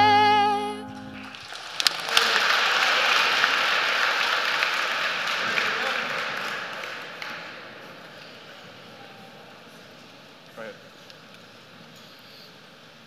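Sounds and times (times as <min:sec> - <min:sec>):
audience applauding: 0:01.2 - 0:08.2.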